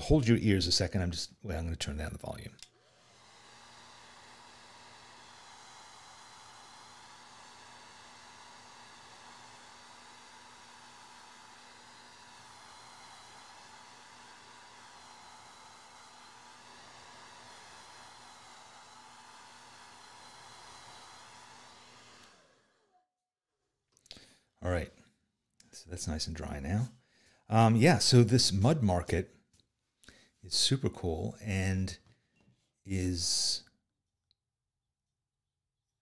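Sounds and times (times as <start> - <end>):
hair dryer blowing: 2.6 - 23.1, 27.4 - 29.0.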